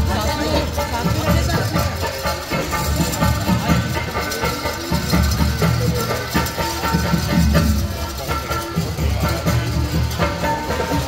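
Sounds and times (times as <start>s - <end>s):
hand drum beat: 0.0s - 11.0s.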